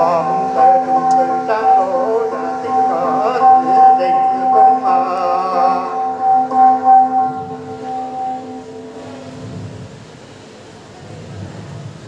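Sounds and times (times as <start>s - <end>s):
metal gong ringing: 0.0s - 9.7s.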